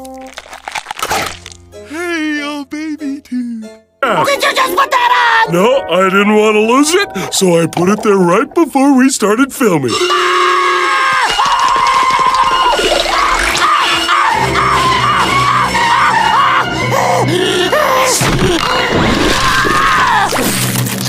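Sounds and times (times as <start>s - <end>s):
cartoon soundtrack music: 0.0s - 21.0s
cartoon character screaming: 9.9s - 20.5s.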